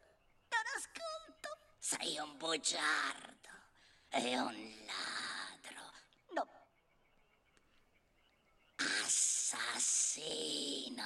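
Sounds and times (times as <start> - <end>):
raspy whispering voice: 8.8 - 11.0.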